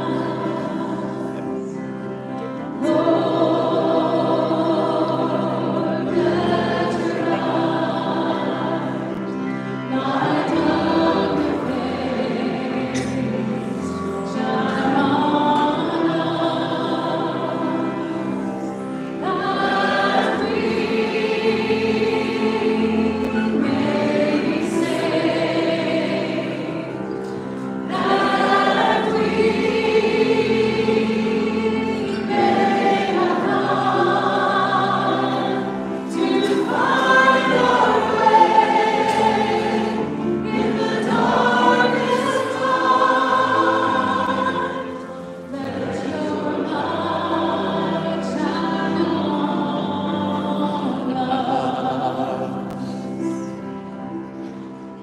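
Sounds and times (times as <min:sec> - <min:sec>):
congregation singing: 0:00.0 - 0:55.0
person singing worship song: 0:00.0 - 0:55.0.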